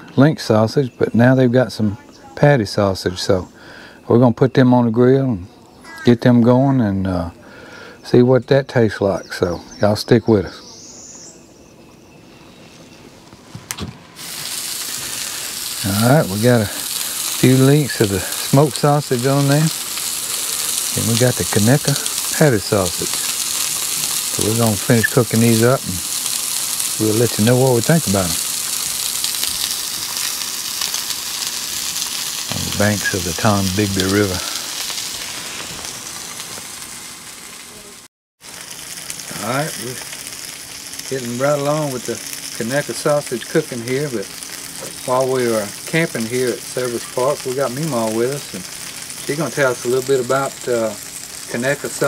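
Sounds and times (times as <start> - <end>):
sausages sizzling on a griddle: 5.8 - 6.1, 14.2 - 52.0.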